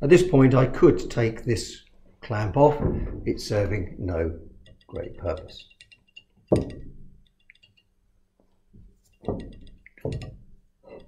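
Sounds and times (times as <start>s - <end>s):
sharp knock on glass: 6.5s - 7.0s, 9.2s - 10.4s.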